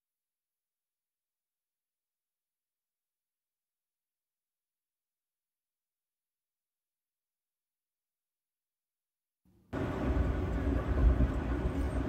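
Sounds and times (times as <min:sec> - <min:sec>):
low rumble with hiss: 0:09.8 - 0:12.0.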